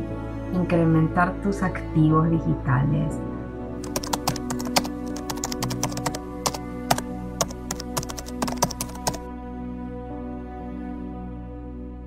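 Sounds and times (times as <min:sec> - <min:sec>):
soft ambient music: 0:00.0 - 0:12.0
keyboard typing clicks: 0:03.8 - 0:09.2.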